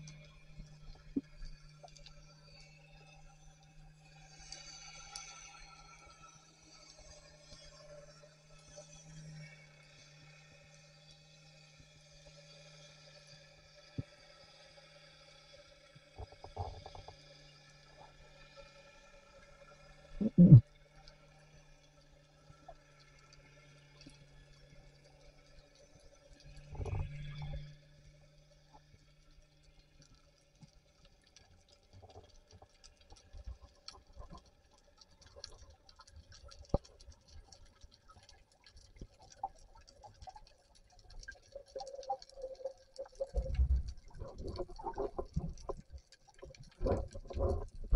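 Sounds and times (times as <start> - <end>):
underwater hum: 19.5 - 20.6, 38.2 - 47.9.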